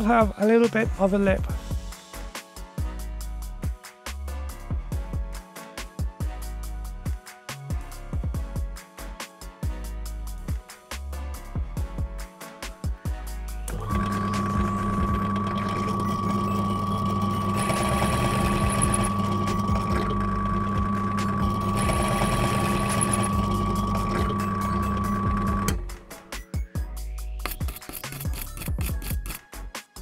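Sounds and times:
drill press cutting metal: 0:13.7 - 0:25.9.

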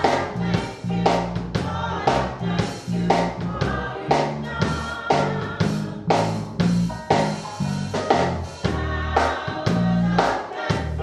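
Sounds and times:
bass line: 0:00.0 - 0:11.0
choir singing gospel: 0:00.0 - 0:11.0
drums hitting: 0:00.0 - 0:11.0.

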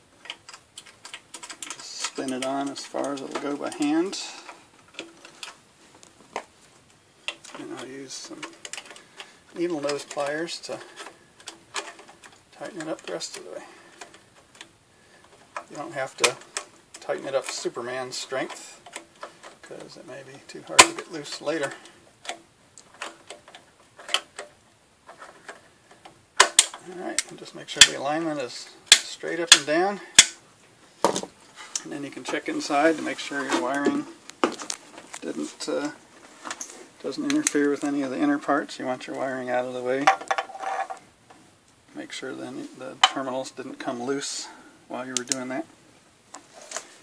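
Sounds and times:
small metal parts clicking: 0:00.2 - 0:05.6, 0:07.2 - 0:20.0, 0:20.7 - 0:28.0.

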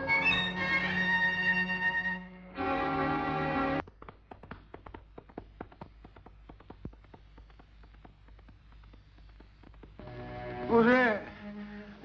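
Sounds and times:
quick sharp tapping: 0:03.8 - 0:10.1.

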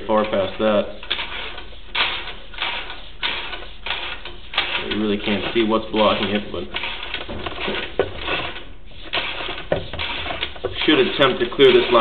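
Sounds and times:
cable reel clicking and rattling: 0:00.1 - 0:12.0.

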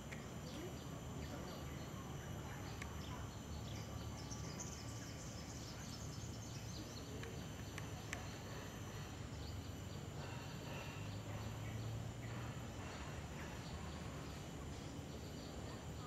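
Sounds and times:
high-pitched insect drone: 0:00.0 - 0:16.0
low steady hum: 0:00.0 - 0:16.0.

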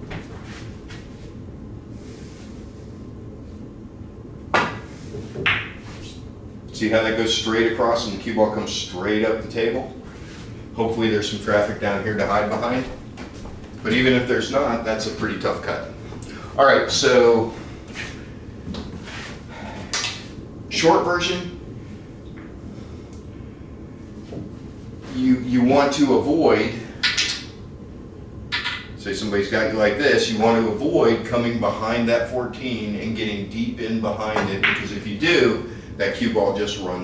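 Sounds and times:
pool balls clicking: 0:04.6 - 0:05.9, 0:27.0 - 0:27.5, 0:28.5 - 0:29.0, 0:34.4 - 0:34.9.

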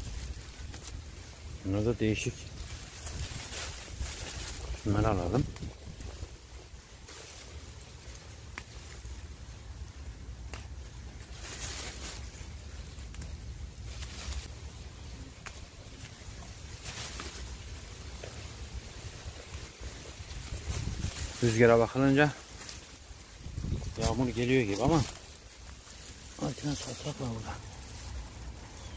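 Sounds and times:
leaves rustling: 0:00.0 - 0:28.9
wind on microphone: 0:02.6 - 0:06.5, 0:18.8 - 0:21.5, 0:23.3 - 0:24.4
small snaps: 0:08.5 - 0:08.8.

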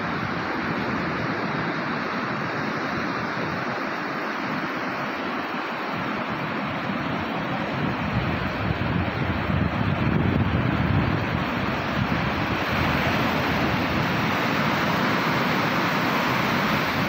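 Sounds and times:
surf breaking on sand: 0:00.0 - 0:17.0
wind buffeting microphone: 0:05.8 - 0:17.0.

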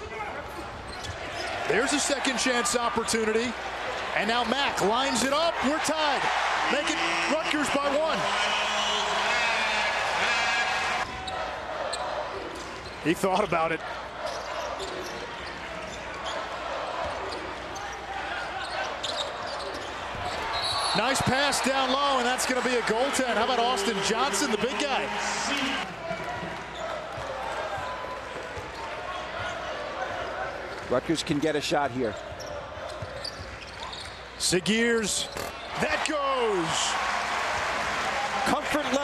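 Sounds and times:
arena crowd noise: 0:00.0 - 0:39.0.

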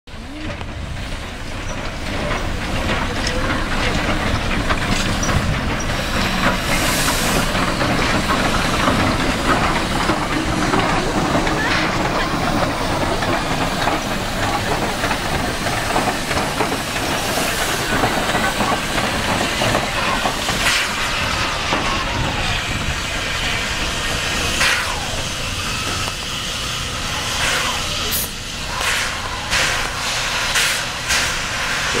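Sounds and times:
steam locomotive hissing: 0:00.1 - 0:32.0
train clanking: 0:00.1 - 0:32.0
steam bursts: 0:00.8 - 0:32.0.

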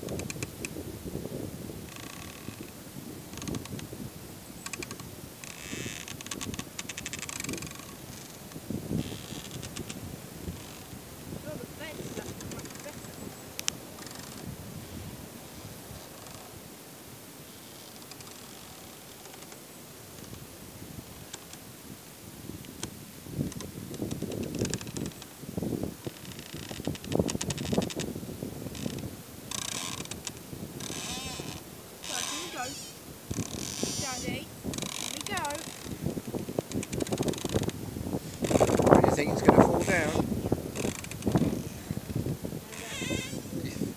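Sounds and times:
tree creaking against fence: 0:00.0 - 0:21.8, 0:22.5 - 0:43.9.

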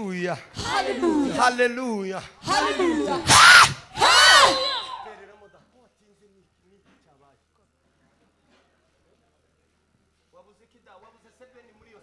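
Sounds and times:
man shouting through pa: 0:02.2 - 0:05.2.

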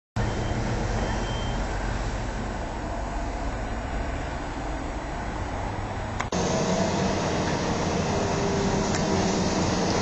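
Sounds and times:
heavy machinery rumbling: 0:06.4 - 0:10.0.

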